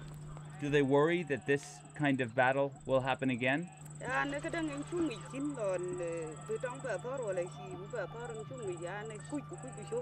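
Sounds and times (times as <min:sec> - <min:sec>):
woman speaking: 0:04.0 - 0:10.0.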